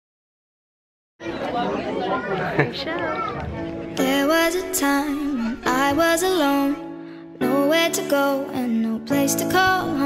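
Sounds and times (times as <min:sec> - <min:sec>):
people talking over one another: 0:01.2 - 0:04.2.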